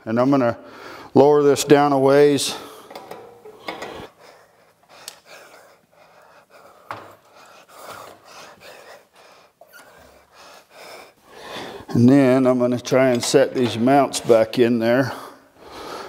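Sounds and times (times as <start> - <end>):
man breathing: 0.6 - 1.2, 2.4 - 12.0, 15.0 - 16.0
engine hoist clicks and creaks: 2.9 - 4.1, 12.8 - 14.5.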